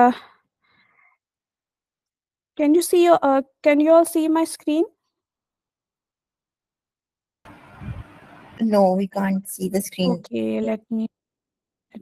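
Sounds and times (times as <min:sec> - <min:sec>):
microphone background hiss: 0:07.5 - 0:11.0.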